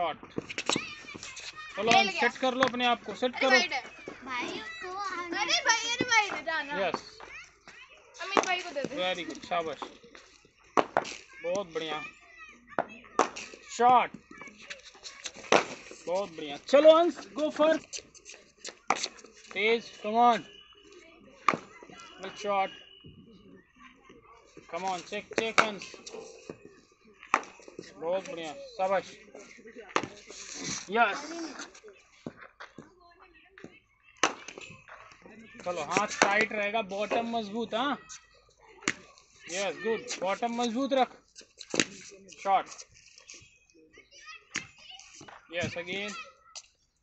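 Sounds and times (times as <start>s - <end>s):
children calling and chattering: 0.0s - 47.0s
cricket ball hitting bat: 12.8s - 13.5s, 25.4s - 25.9s, 34.2s - 34.7s.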